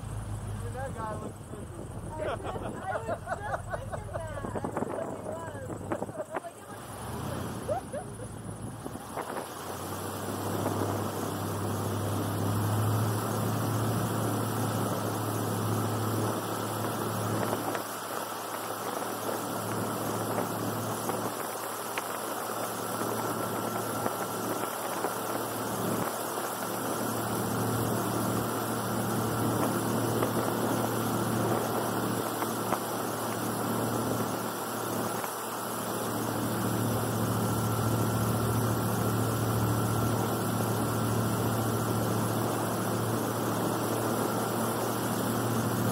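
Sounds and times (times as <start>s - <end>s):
airboat engine droning: 0.0s - 45.9s.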